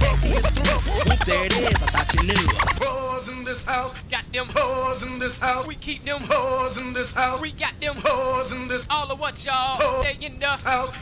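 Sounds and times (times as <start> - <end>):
hip-hop beat with heavy bass: 0.0 - 3.2
turntable scratching: 0.0 - 3.8.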